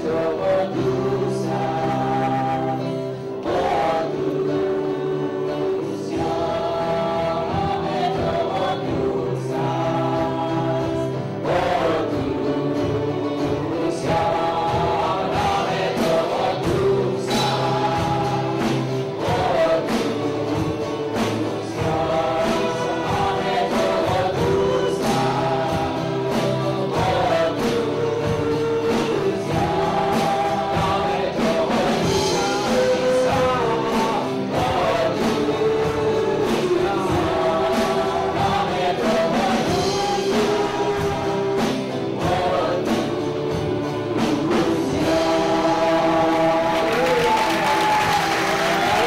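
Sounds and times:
voices singing together: 0.0s - 49.0s
worship band playing: 0.0s - 49.0s.

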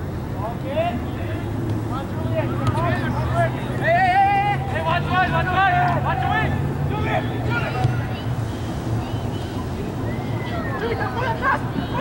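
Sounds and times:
voices shouting: 2.4s - 12.0s.

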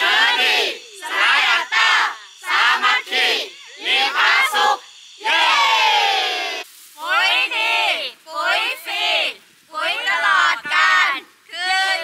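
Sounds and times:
group shouting a slogan: 0.0s - 12.0s.

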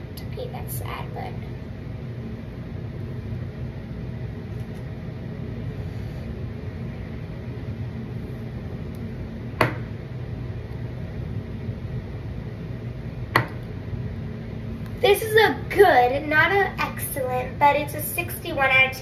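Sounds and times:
low mechanical hum: 0.0s - 19.0s.

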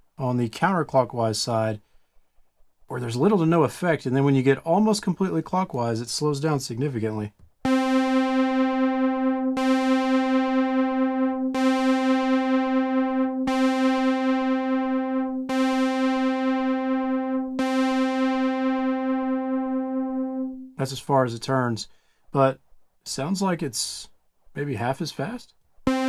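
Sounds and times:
synthesizer note with chorus: 7.7s - 20.8s.

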